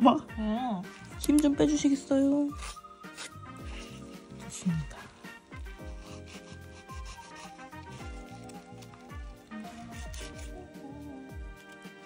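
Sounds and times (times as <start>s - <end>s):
background music with steady beat: 0.0s - 12.0s
nail file rasping on fingernail: 2.6s - 4.2s, 5.6s - 12.0s.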